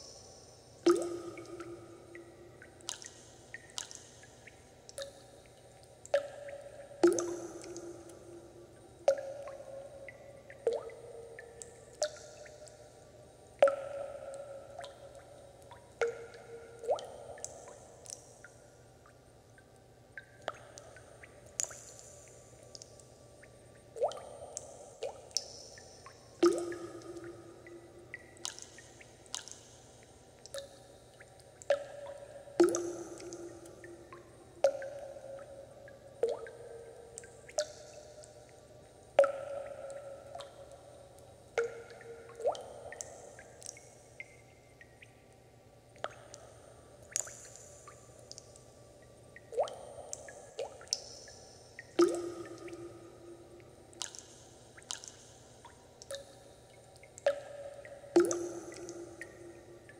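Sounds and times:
water dripping: 0.0s - 59.9s.

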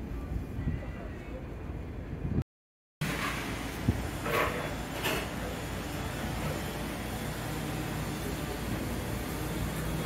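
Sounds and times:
ship rumble and hiss: 3.1s - 10.0s.

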